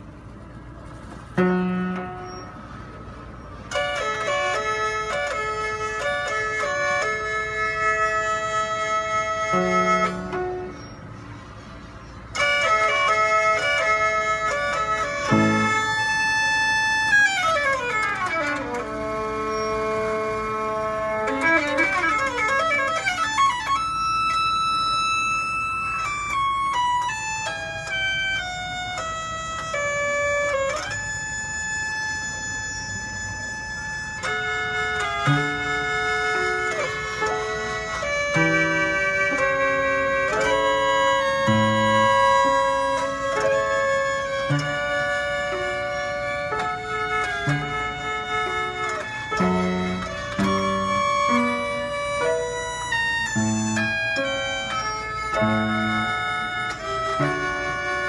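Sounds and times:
mechanical violin and piano tune: 0:00.0 - 0:58.0.

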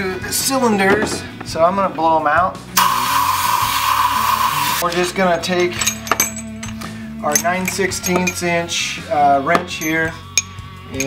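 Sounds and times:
compressed air hiss: 0:02.8 - 0:04.8.

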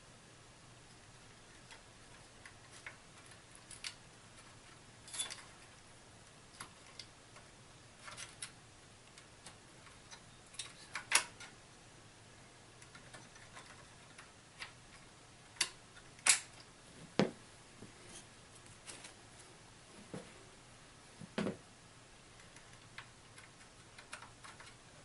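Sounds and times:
sharp plastic snaps: 0:15.6 - 0:16.6.

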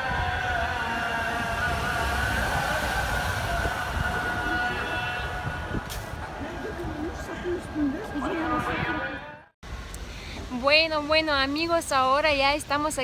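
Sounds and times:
call to prayer over loudspeakers: 0:00.0 - 0:09.5
busy city square noise: 0:00.0 - 0:13.0.

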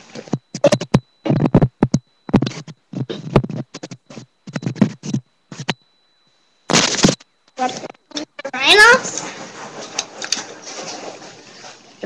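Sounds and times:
scraping and rubbing on microphone: 0:00.0 - 0:05.8, 0:06.7 - 0:12.0.

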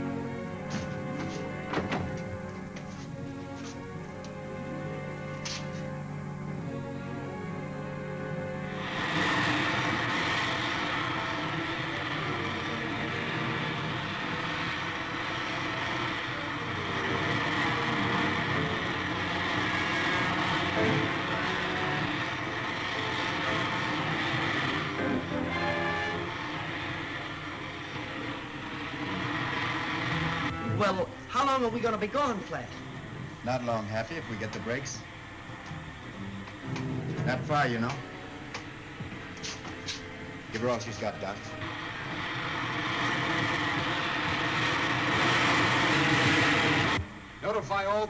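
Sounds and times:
rocket engine rushing: 0:08.6 - 0:48.0.

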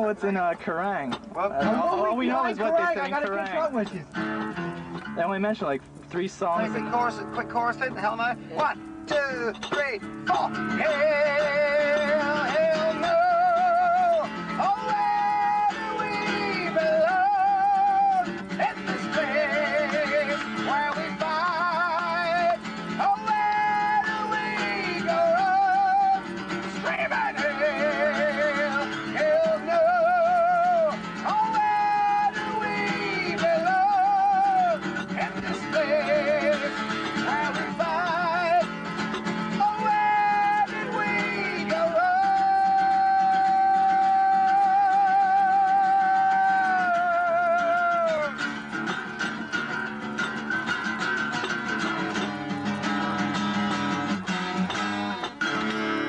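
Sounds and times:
acoustic guitar strumming: 0:00.0 - 0:56.0
man singing with vibrato: 0:09.1 - 0:54.2.

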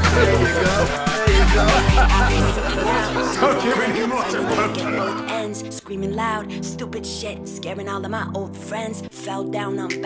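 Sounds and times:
chatter of many voices: 0:00.0 - 0:05.4
music playing: 0:00.0 - 0:10.0.

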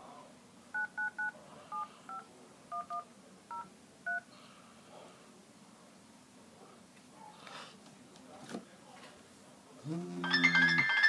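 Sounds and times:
touch tone keypad beeps: 0:00.8 - 0:04.2.

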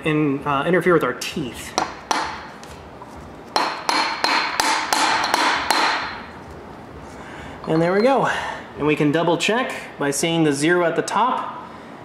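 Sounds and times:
hammer striking metal socket: 0:03.6 - 0:06.2.

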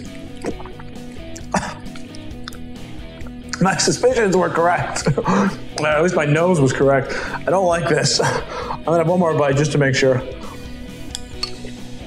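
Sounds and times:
background music with held notes: 0:00.0 - 0:12.0.

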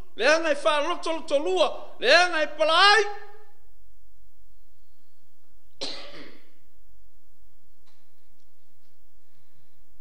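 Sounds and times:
man coughing: 0:05.8 - 0:06.6.

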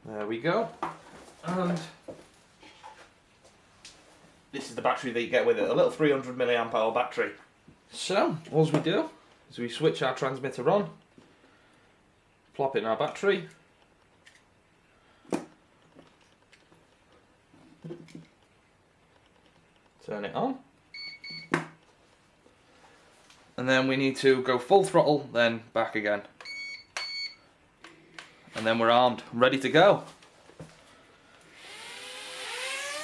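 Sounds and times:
quadcopter motors whining: 0:31.4 - 0:33.0.

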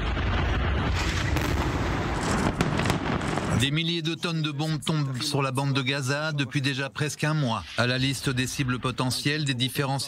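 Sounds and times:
sharp explosion cracks: 0:00.0 - 0:03.7
explosions rumbling: 0:00.0 - 0:03.8.

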